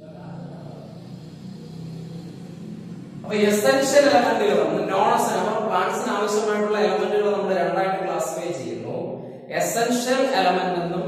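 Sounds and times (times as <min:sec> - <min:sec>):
low steady rumble: 0:00.0 - 0:09.5.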